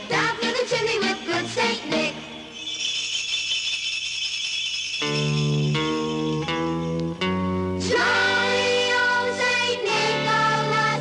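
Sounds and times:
shaken percussion jingling: 0:00.0 - 0:07.3.

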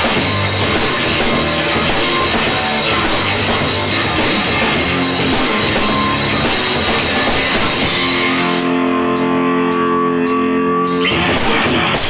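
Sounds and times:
ringing bass chord: 0:00.0 - 0:11.6
rock band playing live: 0:00.0 - 0:12.0.

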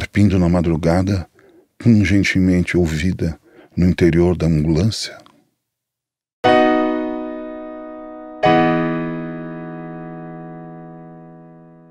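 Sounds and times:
held piano chord: 0:06.4 - 0:11.9.

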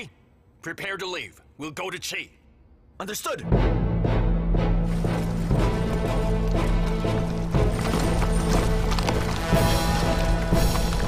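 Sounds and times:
dramatic orchestral music: 0:03.4 - 0:11.0
horse hoofbeats: 0:04.8 - 0:11.0.

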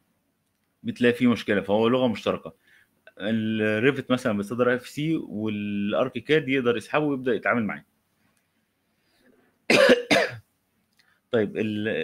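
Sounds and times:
person coughing: 0:09.7 - 0:10.4.

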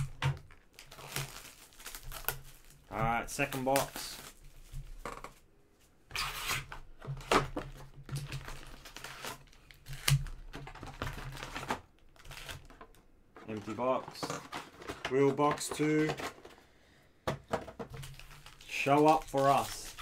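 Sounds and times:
packaging rustling: 0:00.0 - 0:05.4, 0:07.0 - 0:16.7, 0:17.7 - 0:20.0
foil wrap crinkling: 0:00.4 - 0:04.8, 0:17.9 - 0:20.0.

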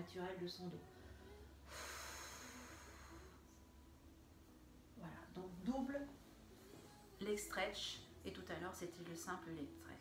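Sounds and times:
woman exhaling forcefully: 0:01.7 - 0:03.4.

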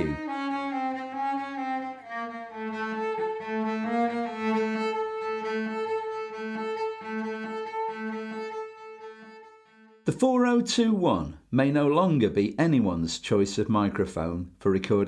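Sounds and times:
bowed string instruments: 0:00.0 - 0:10.2.

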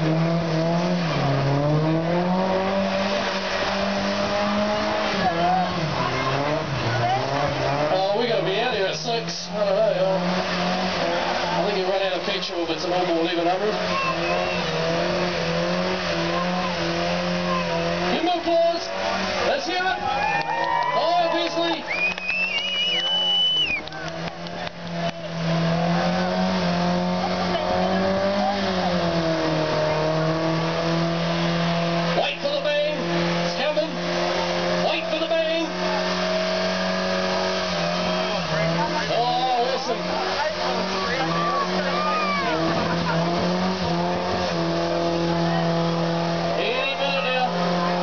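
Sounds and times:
car engine revving high: 0:00.0 - 0:48.0.

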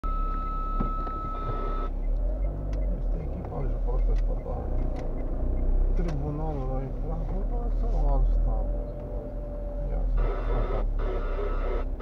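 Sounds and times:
car engine and tyres rumble: 0:00.0 - 0:12.0.

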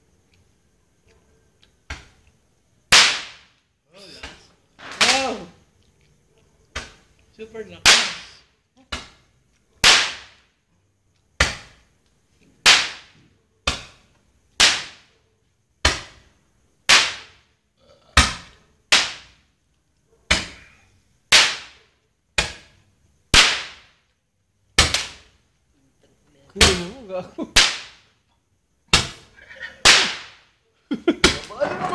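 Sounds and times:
firework cracks: 0:02.8 - 0:05.6, 0:07.8 - 0:10.6, 0:11.4 - 0:15.2, 0:15.8 - 0:17.6, 0:18.2 - 0:19.5, 0:20.3 - 0:24.1, 0:24.7 - 0:25.4, 0:26.6 - 0:28.2, 0:28.8 - 0:30.6.

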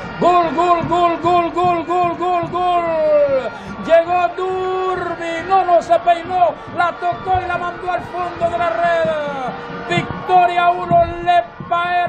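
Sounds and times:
commentator shouting goal: 0:00.0 - 0:12.0.

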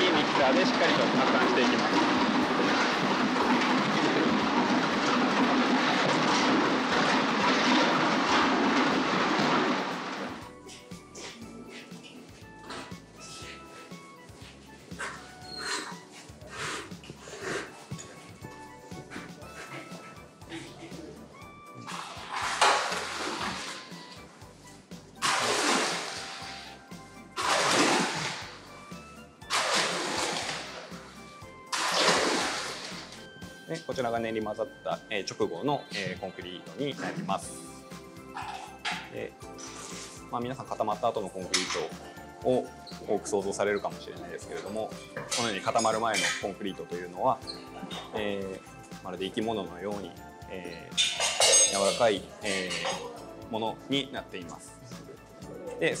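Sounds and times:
concrete mixer rattling: 0:00.0 - 0:11.5, 0:21.8 - 0:24.1, 0:25.2 - 0:26.7, 0:27.3 - 0:28.8, 0:29.4 - 0:33.3, 0:43.0 - 0:47.2.

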